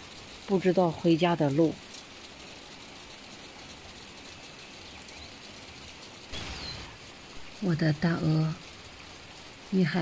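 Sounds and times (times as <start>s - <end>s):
rain on wet foliage: 0.0s - 10.0s.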